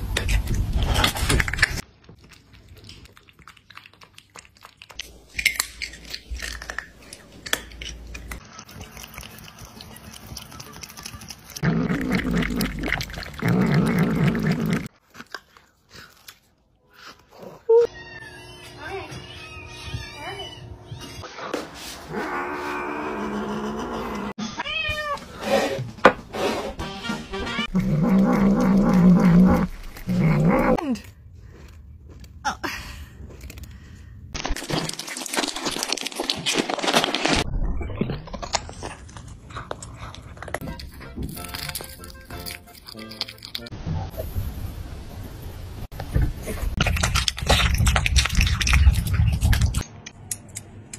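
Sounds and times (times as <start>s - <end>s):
music: 26.5s - 27.7s, 40.6s - 43.8s.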